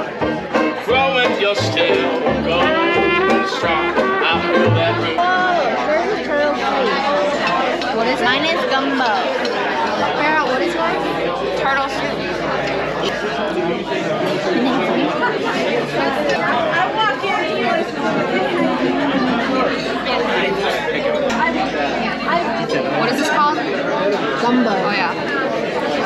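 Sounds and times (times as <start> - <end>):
chatter of many voices: 0.0 - 26.0.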